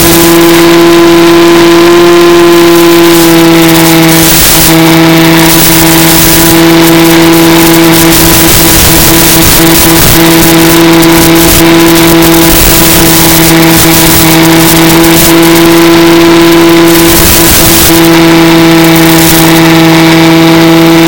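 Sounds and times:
airflow rushing past microphone: 0.0 - 21.0
electric motor and propeller drone: 0.0 - 21.0.

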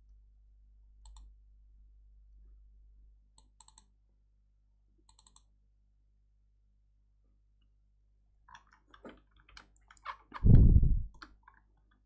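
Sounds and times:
low room hum: 0.0 - 11.9
computer mouse clicking: 1.0 - 1.3, 3.4 - 4.0, 5.0 - 5.5.

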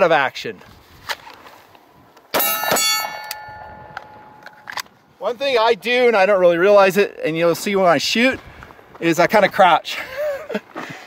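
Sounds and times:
metal plate struck ringing: 2.4 - 4.7.

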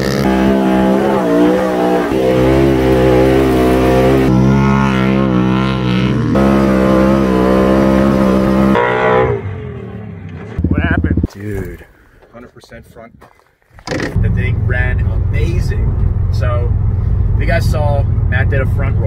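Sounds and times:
dirt bike engine revving: 0.0 - 11.4
off-road vehicle engine revving: 0.0 - 11.7.

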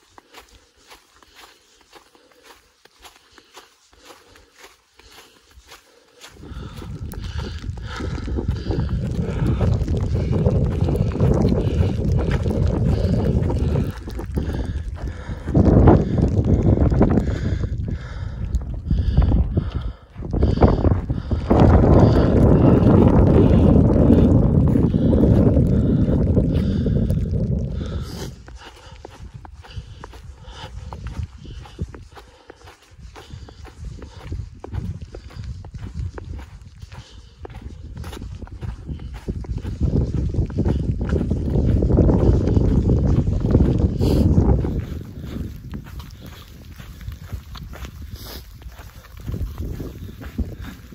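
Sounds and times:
footsteps on snow: 0.0 - 50.9
wind buffeting microphone: 4.0 - 50.9.

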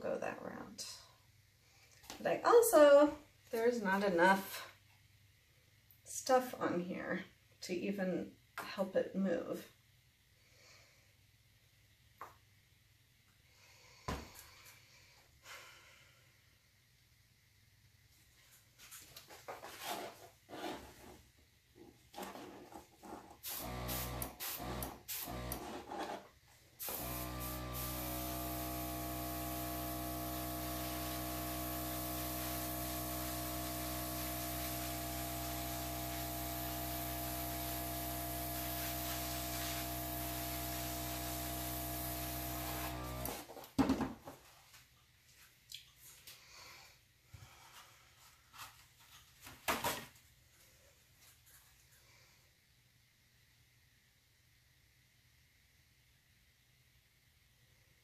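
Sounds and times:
air gun hissing: 23.4 - 25.6, 26.8 - 43.4.

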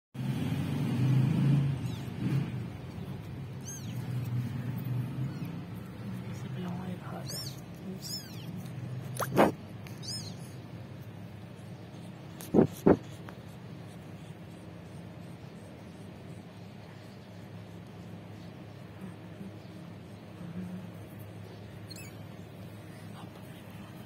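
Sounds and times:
kitten mewing: 1.8 - 6.4, 7.2 - 10.6, 12.3 - 13.4
low background murmur: 1.8 - 24.0.

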